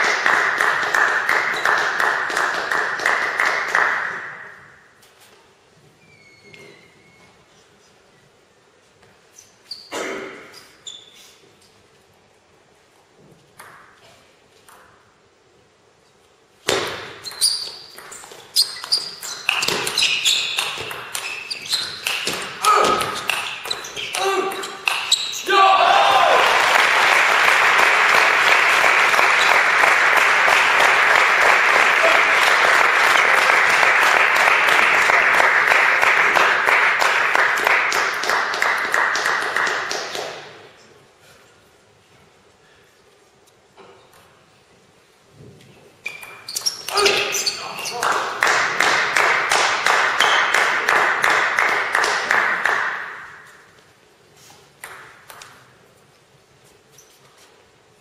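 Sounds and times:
audience applause: 0.0 - 4.1, 26.1 - 40.1
table tennis ball bouncing: 13.6 - 14.0, 16.6 - 25.3, 54.8 - 55.7.

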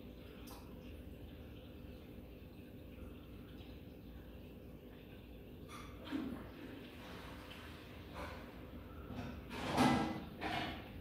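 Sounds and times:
aquarium equipment hum: 0.0 - 11.0
circulating water: 0.0 - 11.0.

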